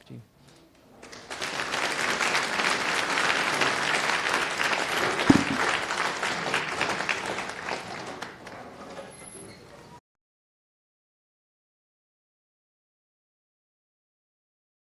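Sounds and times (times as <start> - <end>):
audience applauding: 1.0 - 8.9
single thump: 5.3 - 5.7.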